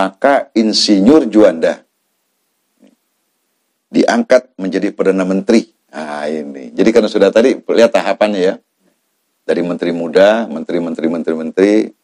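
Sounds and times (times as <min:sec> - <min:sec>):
man speaking: 0:00.0 - 0:01.9, 0:03.9 - 0:08.7, 0:09.4 - 0:12.0.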